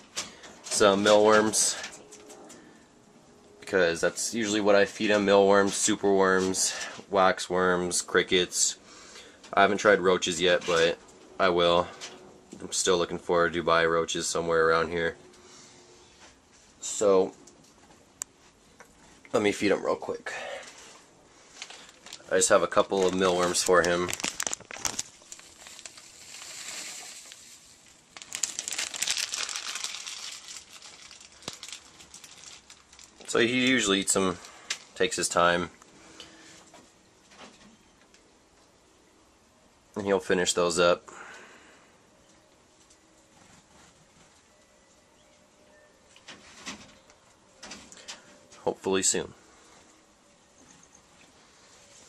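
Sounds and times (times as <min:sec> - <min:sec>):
plastic packaging crinkling: 0:21.5 - 0:35.1.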